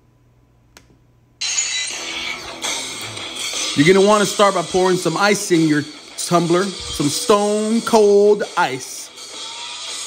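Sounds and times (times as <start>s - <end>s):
loud background music: 1.4s - 10.0s.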